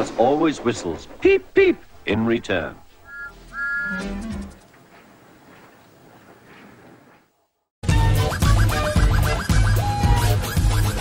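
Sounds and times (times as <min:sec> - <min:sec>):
steam whistle peeps: 0:03.0 - 0:04.5.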